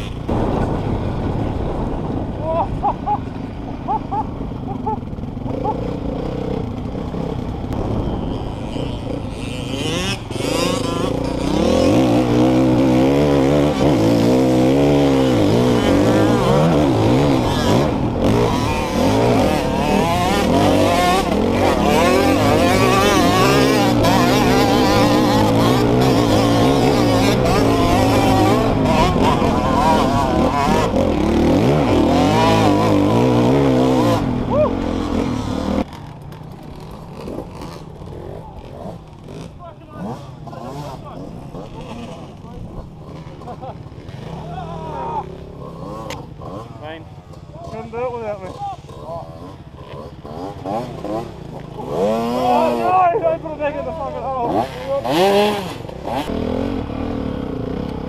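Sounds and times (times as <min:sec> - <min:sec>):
dirt bike engine revving: 0:00.0 - 0:58.0
engines at lower revs: 0:00.0 - 0:58.0.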